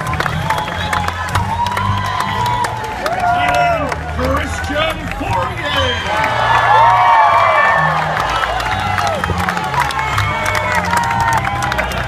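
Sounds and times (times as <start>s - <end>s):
crowd cheering and shouting: 0.0s - 12.0s
scattered clapping: 0.0s - 12.0s.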